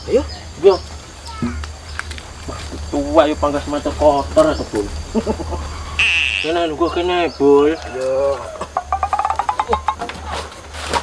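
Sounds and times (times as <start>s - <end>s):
chicken clucking: 1.3s - 9.8s.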